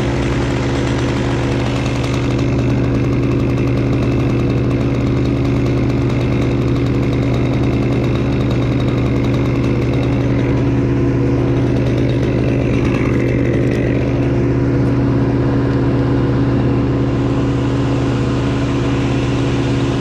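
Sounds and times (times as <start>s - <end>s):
chainsaw engine idling: 0.0s - 20.0s.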